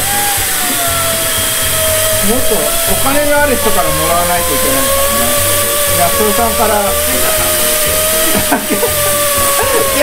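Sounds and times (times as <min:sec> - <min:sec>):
air sander grinding metal: 0:00.0 - 0:10.0
low machine hum: 0:00.0 - 0:10.0.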